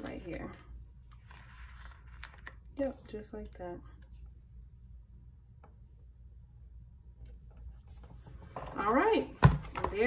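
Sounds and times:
paper rustling: 0:00.0 - 0:03.6.

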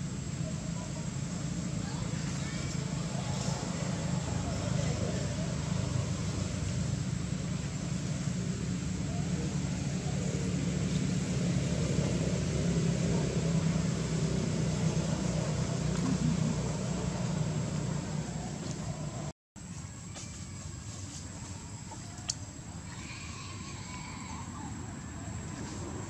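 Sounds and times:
low engine-like hum: 0:00.0 - 0:26.0.

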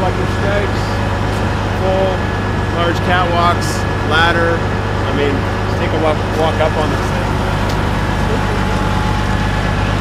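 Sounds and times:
excavator diesel engine idling: 0:00.0 - 0:10.0
faint steady whine: 0:00.0 - 0:10.0.

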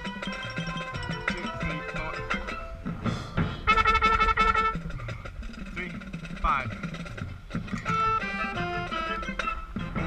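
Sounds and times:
marching band playing: 0:00.0 - 0:10.0
trumpet holding a loud note: 0:03.7 - 0:04.8.

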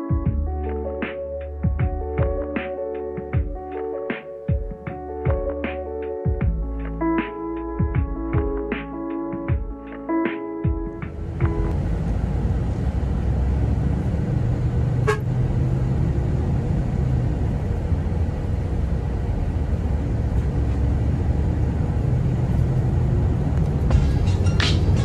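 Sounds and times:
bus engine and road rumble: 0:10.9 - 0:25.0.

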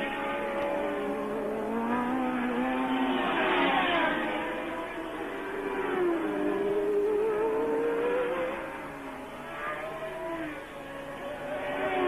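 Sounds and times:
passing racing cars: 0:00.0 - 0:12.0
racing car engine accelerating: 0:00.0 - 0:12.0.

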